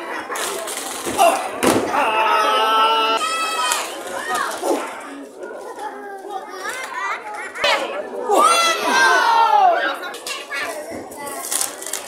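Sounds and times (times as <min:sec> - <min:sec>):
spectators shouting: 0:01.2 - 0:03.9, 0:07.7 - 0:10.0.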